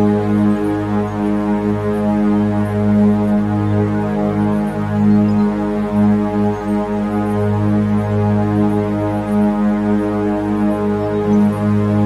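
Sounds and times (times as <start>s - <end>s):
meditation drone tone: 0.0s - 12.0s.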